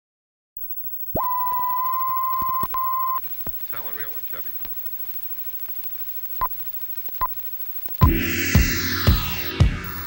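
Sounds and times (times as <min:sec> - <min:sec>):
high steady beep: 0:00.6 - 0:10.0.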